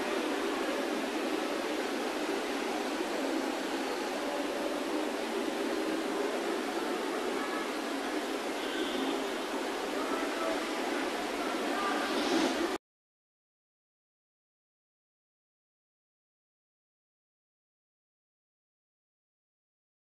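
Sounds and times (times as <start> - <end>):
steady background hiss: 0.0 - 12.8.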